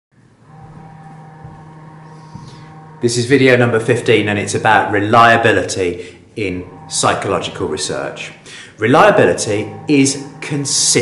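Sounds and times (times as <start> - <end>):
faint high whine: 0.2 - 11.0
steady low hum: 0.2 - 11.0.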